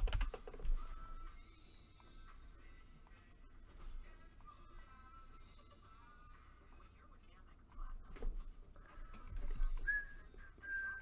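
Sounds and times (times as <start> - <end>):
computer keyboard and mouse clicking: 0.0 - 0.6
faint whistled notes: 9.8 - 11.0.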